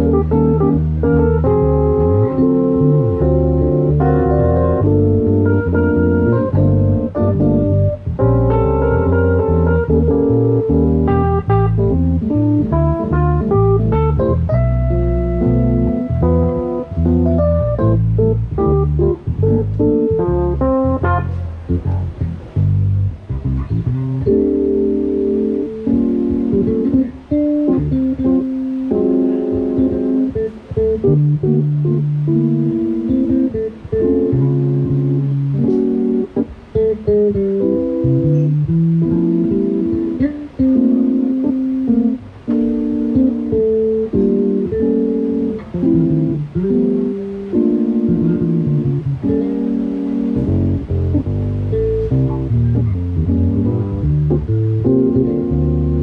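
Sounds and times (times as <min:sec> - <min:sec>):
electric bass guitar: 0:00.0 - 0:56.0
stage piano playing: 0:00.0 - 0:56.0.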